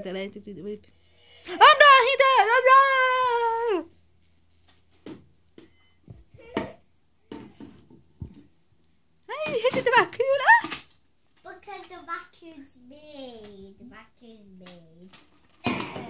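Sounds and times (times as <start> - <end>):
child's wordless voice: 11.4 - 15.2.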